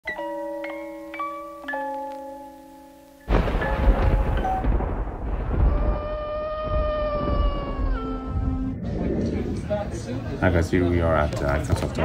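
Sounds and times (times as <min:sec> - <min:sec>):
low rumble: 0:03.3 - 0:10.5
wolf howling: 0:05.4 - 0:08.9.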